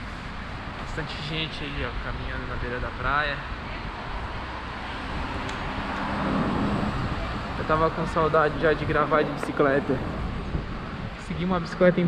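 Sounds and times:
road traffic: 0.0 - 12.0
wind rumbling on microphone: 0.0 - 12.0.

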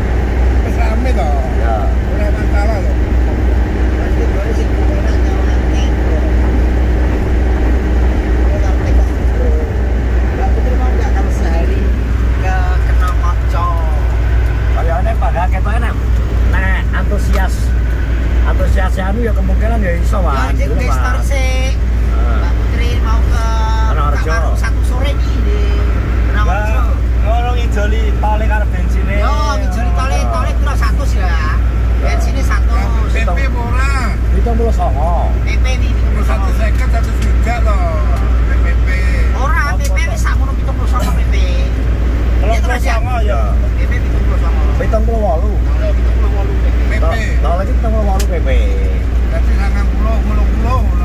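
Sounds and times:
car engine and tyres droning: 0.0 - 51.0
men talking: 0.0 - 51.0.

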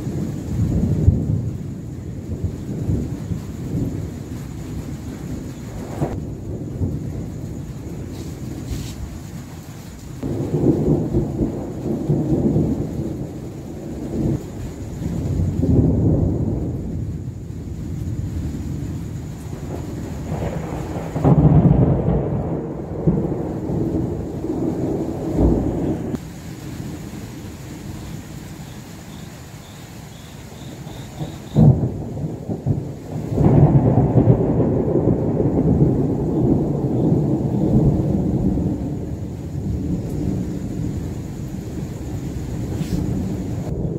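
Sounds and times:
rain: 0.0 - 43.9
thunder rumbling: 0.0 - 43.9.

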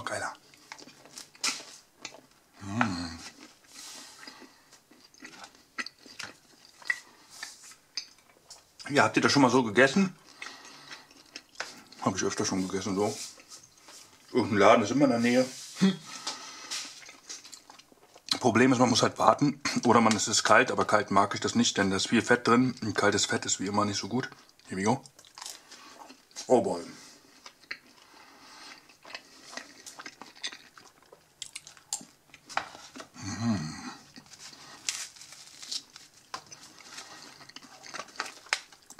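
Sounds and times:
chewing crusty bread: 0.0 - 14.7, 16.1 - 19.1, 19.7 - 38.9.

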